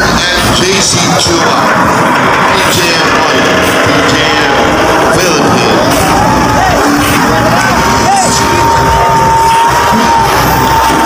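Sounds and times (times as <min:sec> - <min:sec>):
vehicle engine running hard: 0:00.0 - 0:11.0.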